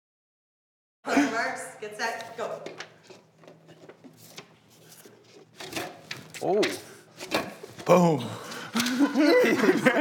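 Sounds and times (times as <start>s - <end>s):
paper rustling: 2.2s - 7.9s.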